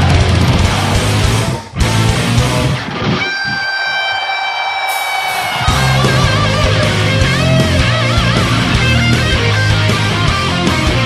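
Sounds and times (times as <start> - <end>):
heavy metal band: 0.0 - 11.0
high electric guitar note ringing: 4.9 - 9.1.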